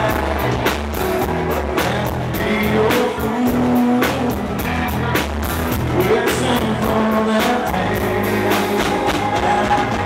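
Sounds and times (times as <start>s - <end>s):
live country band music: 0.0s - 10.0s.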